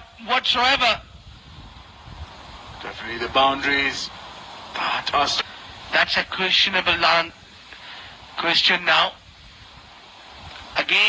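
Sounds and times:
steady low background hiss: 0.0 - 11.0.

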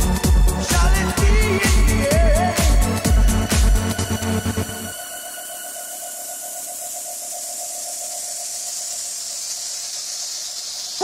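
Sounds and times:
synthesized hiss: 4.5 - 11.0.

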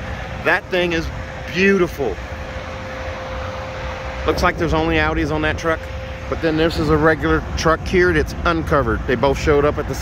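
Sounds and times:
faint steady hum: 0.0 - 10.0
road traffic rumble: 0.0 - 10.0.

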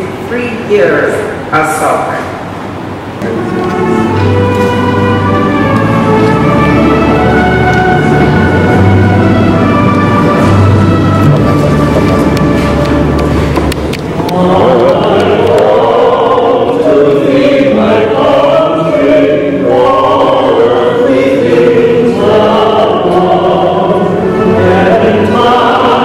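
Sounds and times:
choir singing: 3.3 - 13.6, 14.2 - 26.0.

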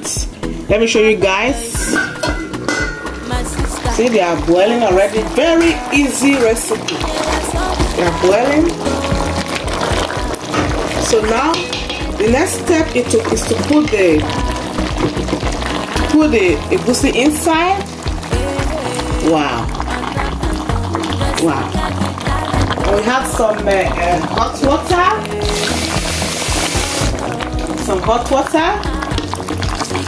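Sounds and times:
background music: 0.0 - 30.0
water pouring into pot: 1.8 - 30.0
stock bubbling at a boil: 2.6 - 30.0.

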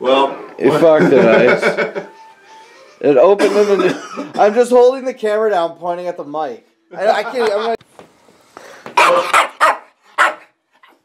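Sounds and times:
small dog barking: 9.0 - 10.5.

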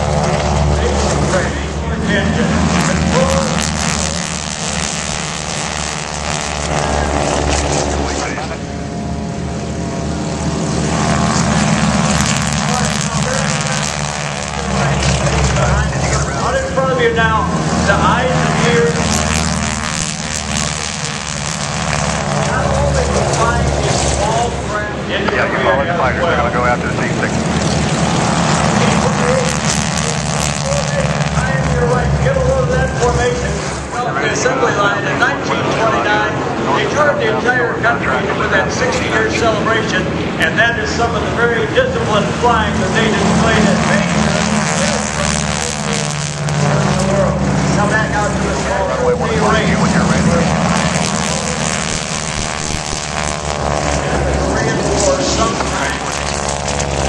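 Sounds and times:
propeller aircraft engines: 0.0 - 57.0.

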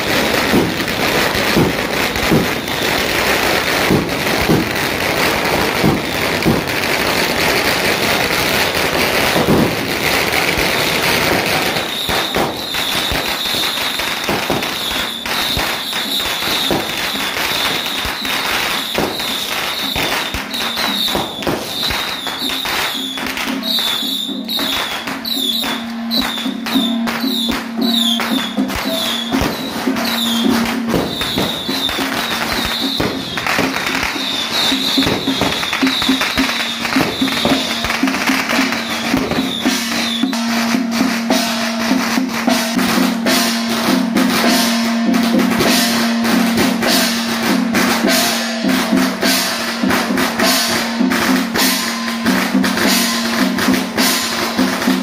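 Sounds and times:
firecrackers crackling: 0.0 - 55.0
music: 11.4 - 55.0.

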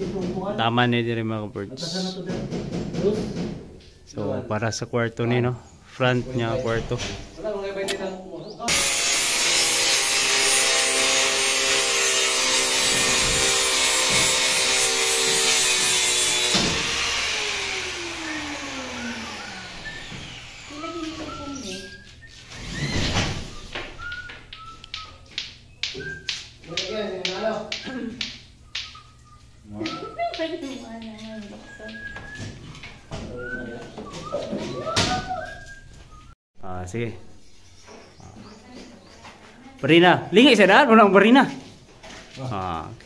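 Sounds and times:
angle grinder cutting board: 8.7 - 22.0
grinder disc spinning down: 8.7 - 22.0
voices: 20.7 - 22.2, 24.3 - 35.7, 38.3 - 41.6.

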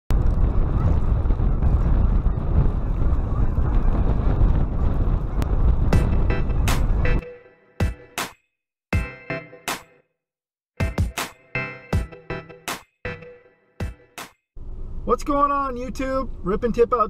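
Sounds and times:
wind buffeting microphone: 0.1 - 7.2
music with sharp drum hits: 5.9 - 7.2, 7.8 - 8.4, 9.0 - 9.9, 10.8 - 12.9, 13.8 - 14.4.

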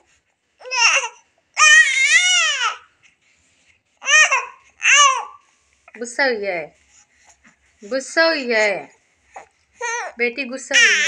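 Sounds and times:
infant crying: 0.6 - 2.9, 4.0 - 5.4.

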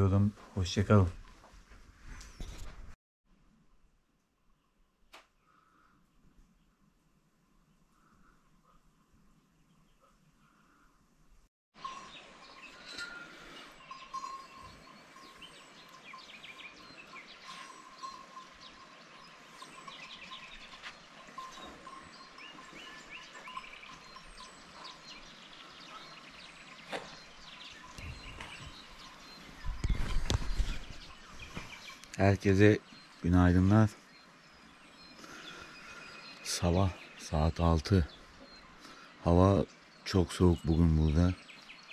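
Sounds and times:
birds chirping: 11.8 - 41.9.

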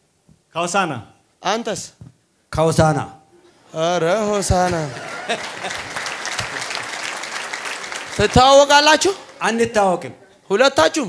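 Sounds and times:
audience applauding: 4.2 - 10.2.

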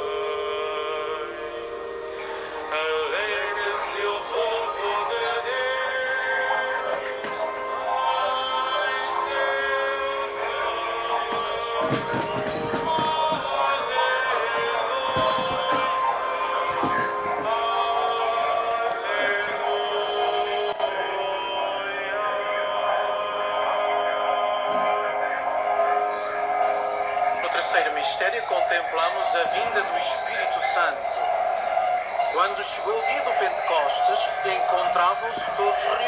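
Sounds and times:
hymn with sustained chords: 0.0 - 36.0.

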